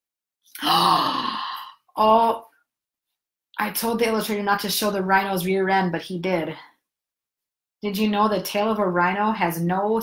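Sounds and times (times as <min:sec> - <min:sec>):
person gasping: 0:00.6 - 0:01.9.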